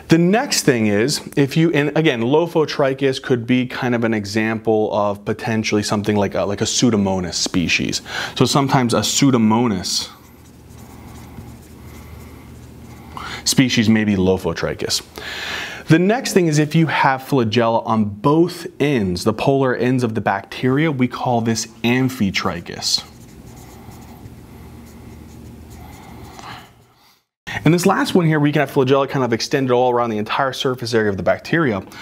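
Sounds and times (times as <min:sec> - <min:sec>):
marker writing on whiteboard: 0:09.7 - 0:13.3, 0:22.9 - 0:26.8.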